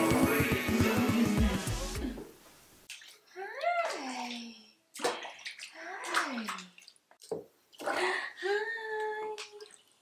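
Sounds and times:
water splashing in a bathtub: 2.8s - 10.0s.

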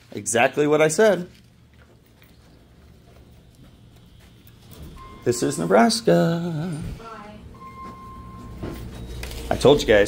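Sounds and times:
faint footsteps in hallway: 0.0s - 9.7s
low steady hum: 1.3s - 10.0s.

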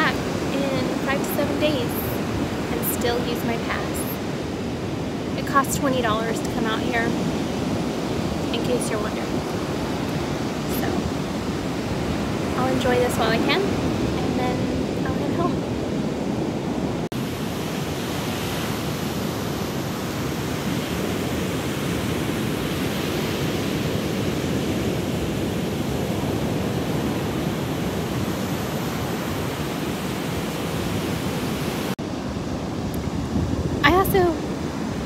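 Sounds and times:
ocean surf breaking on beach: 0.0s - 35.0s.

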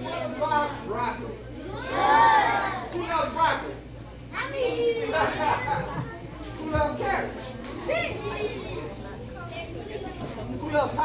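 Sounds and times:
children talking and calling out: 1.5s - 3.2s, 4.1s - 11.0s.

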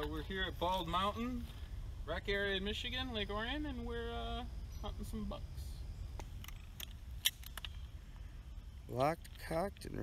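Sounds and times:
crossbow cocking clicks: 6.2s - 8.0s.

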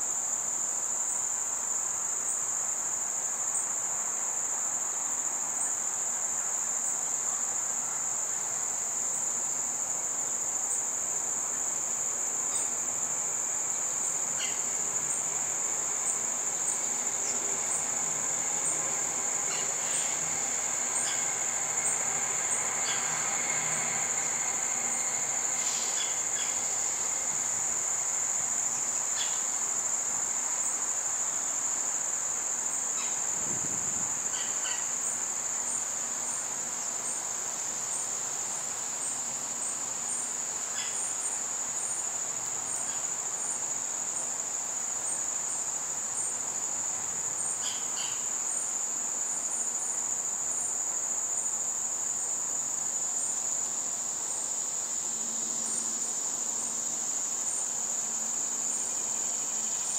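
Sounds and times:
insects trilling: 0.0s - 59.9s
short insect chirps: 8.7s - 37.3s.

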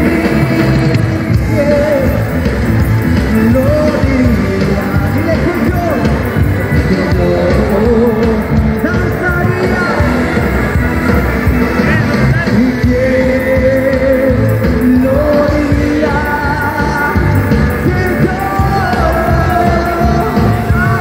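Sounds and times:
person singing long notes: 0.0s - 5.8s, 6.8s - 21.0s
live band through loudspeakers: 0.0s - 21.0s.

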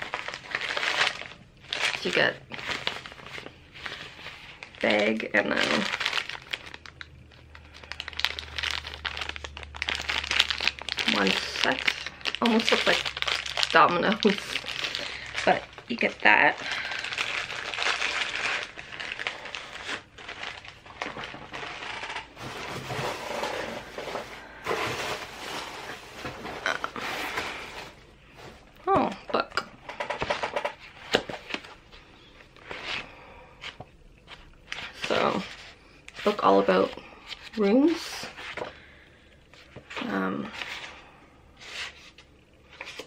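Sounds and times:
plastic and tissue paper crinkling: 0.0s - 29.0s, 30.0s - 43.0s
objects rustling: 16.6s - 36.5s.

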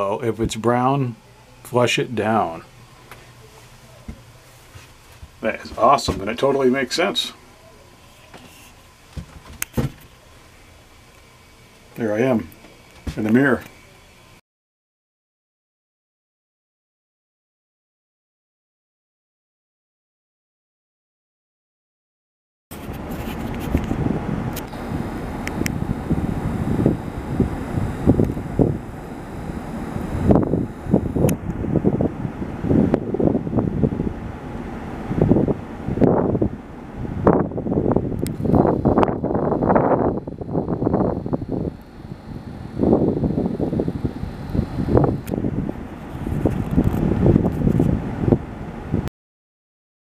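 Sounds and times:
wind buffeting microphone: 22.7s - 49.1s.

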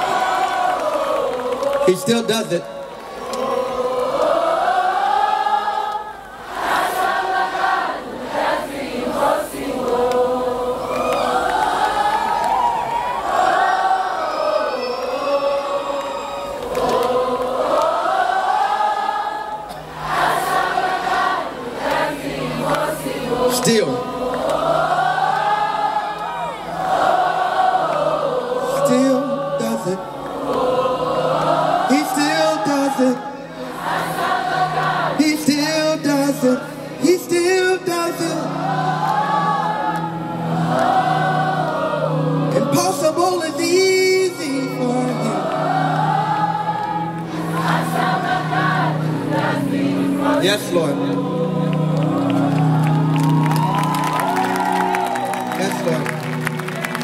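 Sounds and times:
crowd singing worship chorus: 0.0s - 57.0s.

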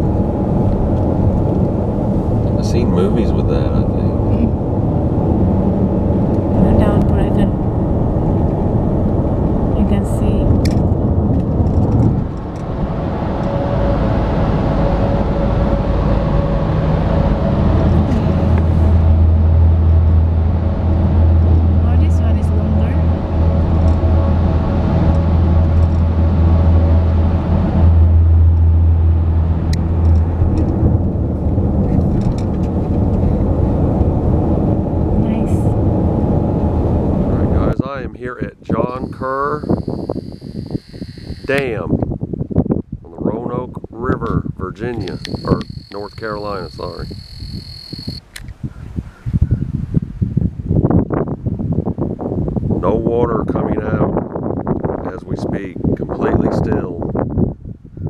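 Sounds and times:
low drone in tunnel: 0.0s - 37.8s, 38.6s - 42.1s, 44.1s - 48.3s
car road and engine noise: 0.0s - 52.9s.

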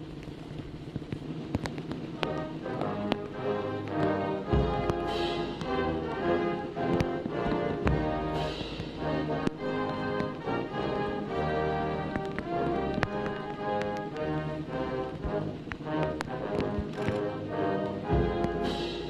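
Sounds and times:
drum beats: 1.1s - 19.0s
band playing an anthem: 2.2s - 19.0s
cymbal crashes: 4.5s - 6.2s, 7.8s - 9.3s, 18.2s - 19.0s.

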